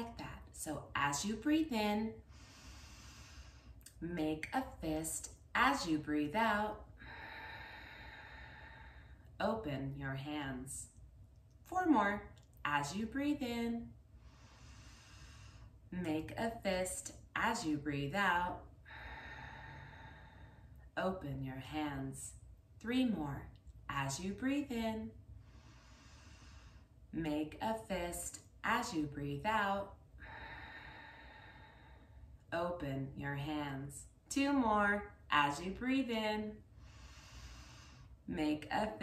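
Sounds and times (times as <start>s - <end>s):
woman breathing in: 2.2s - 3.9s, 7.0s - 9.4s, 14.1s - 15.9s, 18.8s - 20.9s, 25.3s - 27.0s, 30.2s - 32.4s, 36.7s - 38.2s.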